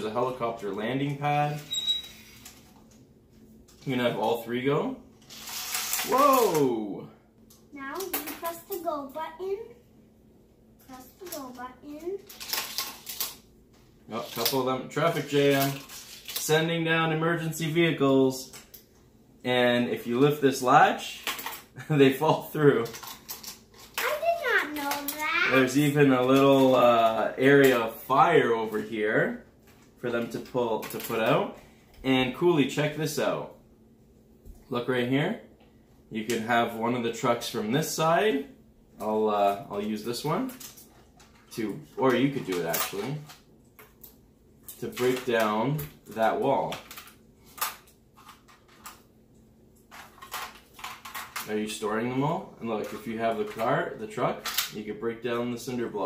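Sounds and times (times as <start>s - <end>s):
child calling out: 24.0s - 25.6s.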